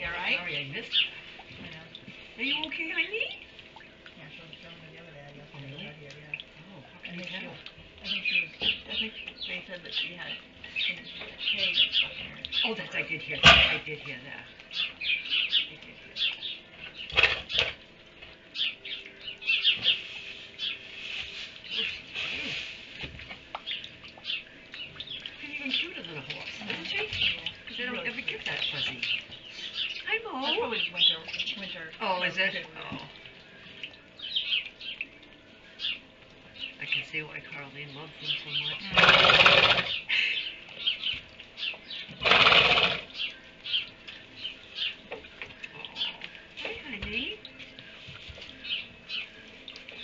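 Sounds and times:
small birds chirping: 0.0 - 50.0
horse rolling in wood shavings: 19.5 - 23.8, 36.8 - 40.0, 42.2 - 43.8.

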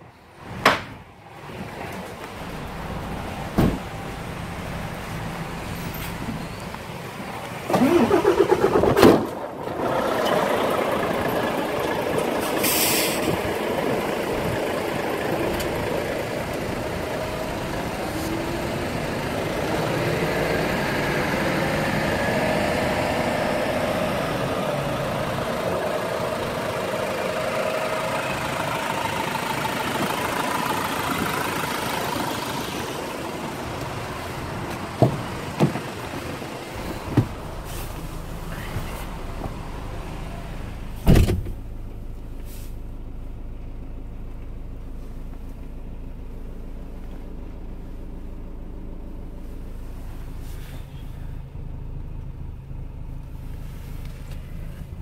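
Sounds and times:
diesel engine idling: 0.0 - 55.0
starter motor cranking: 7.7 - 11.3.

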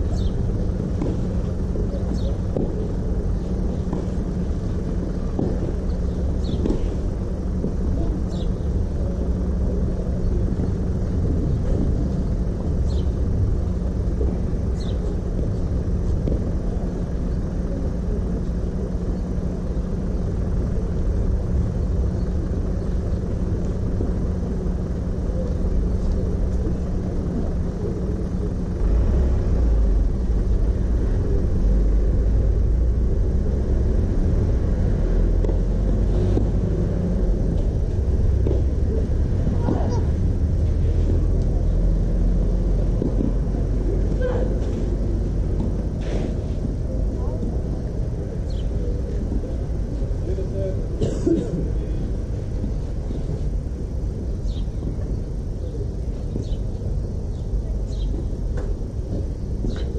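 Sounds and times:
low outdoor rumble: 0.0 - 59.9
low steady hum: 0.0 - 59.9.

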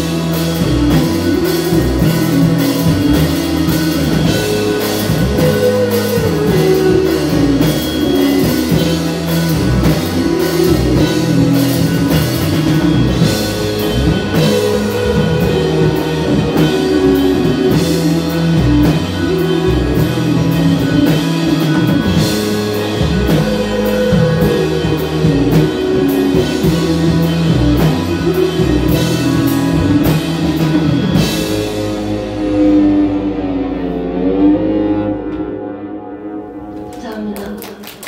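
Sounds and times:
drum kit with cymbals: 0.0 - 33.5
electric guitar: 0.0 - 38.0.

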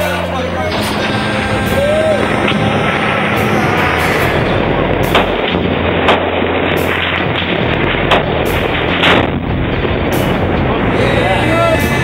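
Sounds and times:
steady rumble: 0.0 - 12.0
gunshots: 0.7 - 10.7.

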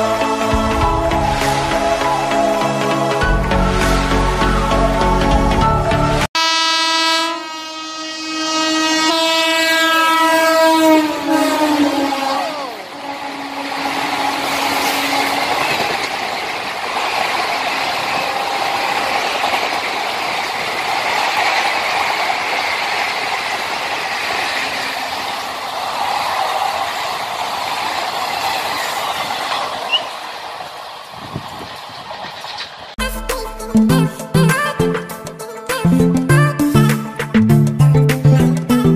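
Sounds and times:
locomotive horn: 6.3 - 15.8
train coaches rushing and rattling: 9.4 - 33.0.

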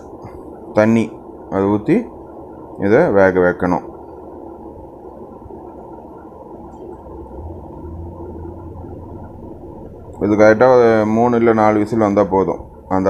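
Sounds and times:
low hum: 0.0 - 13.0.

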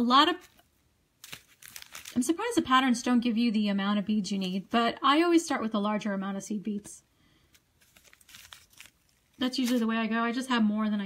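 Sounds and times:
faint crinkling rustles: 0.4 - 2.3, 7.4 - 9.9.

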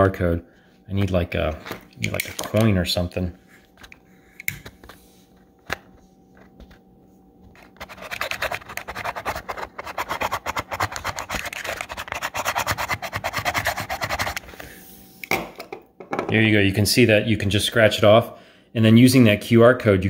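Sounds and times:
fingernail scratching cardboard: 7.8 - 14.4.

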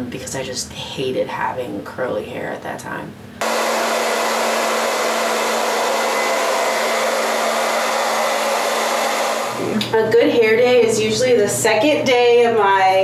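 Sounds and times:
hair dryer blowing: 3.4 - 10.0.

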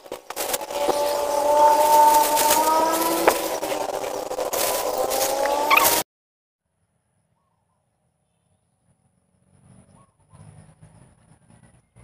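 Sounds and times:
vehicle engine running: 0.0 - 6.0.

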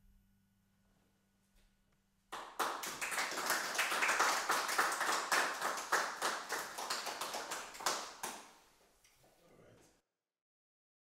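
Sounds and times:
people clapping: 2.3 - 8.6.

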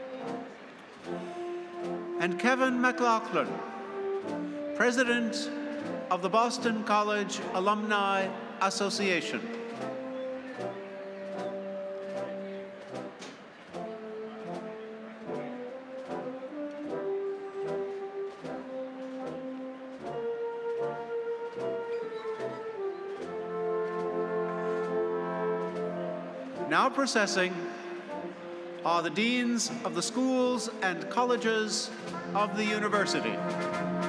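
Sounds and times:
slow brass processional music: 0.0 - 34.0.

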